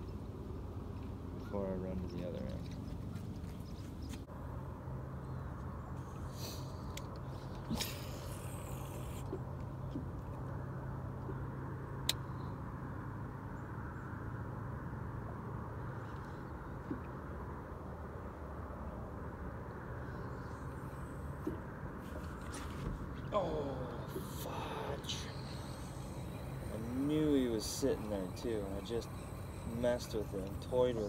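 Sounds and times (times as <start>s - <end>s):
steady low hum: 0.0s - 31.0s
faint sharp clicks: 12.0s - 12.2s.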